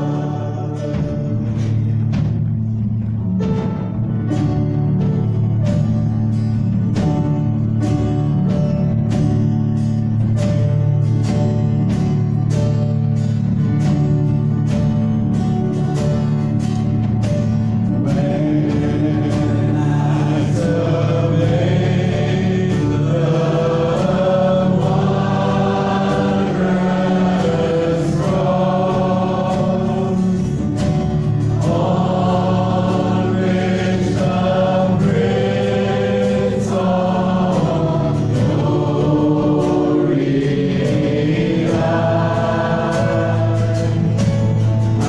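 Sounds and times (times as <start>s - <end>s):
man and woman singing: 0.0s - 1.4s, 18.1s - 30.7s, 31.6s - 44.6s
acoustic guitar: 0.0s - 45.0s
drum and cymbal strokes: 0.0s - 45.0s.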